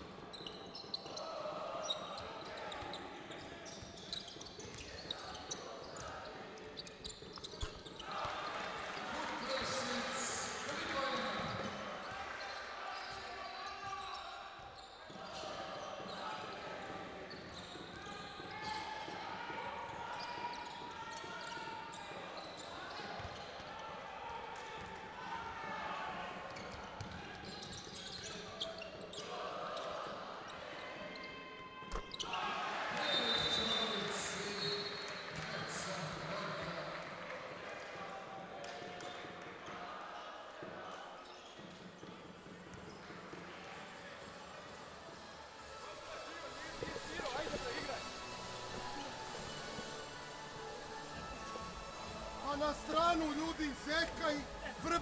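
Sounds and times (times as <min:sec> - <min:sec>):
players and crowd voices: 0:00.0 - 0:55.0
crowd cheering: 0:08.0 - 0:13.7, 0:32.2 - 0:38.8.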